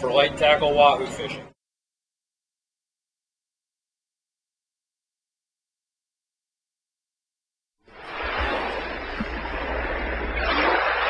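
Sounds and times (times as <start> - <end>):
rushing water: 7.9 - 11.0
low even hum: 8.0 - 11.0.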